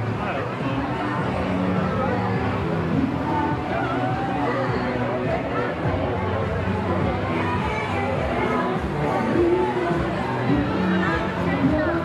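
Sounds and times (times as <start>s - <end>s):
background music: 0.0s - 12.0s
crowd babble: 0.0s - 12.0s.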